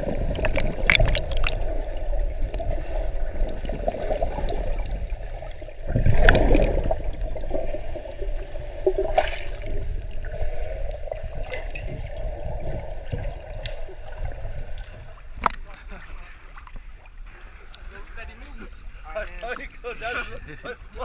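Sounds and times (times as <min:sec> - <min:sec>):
muffled underwater water rumble: 0:00.0 - 0:21.0
sharp underwater clicks: 0:00.3 - 0:01.7.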